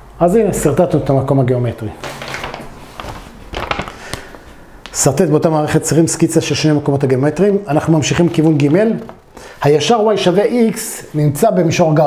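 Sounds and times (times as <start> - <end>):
paper rustling: 2.0 - 4.6.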